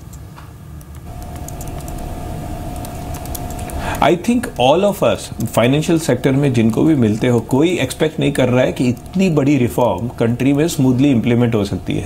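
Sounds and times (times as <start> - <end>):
low hum and rumble: 0.0 - 12.0
single-pitched whine: 0.9 - 12.0.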